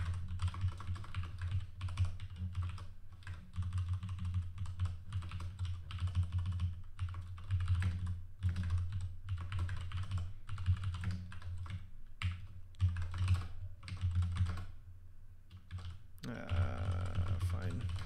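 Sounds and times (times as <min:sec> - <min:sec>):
typing on a computer keyboard: 0:00.0 - 0:14.8, 0:15.5 - 0:18.0.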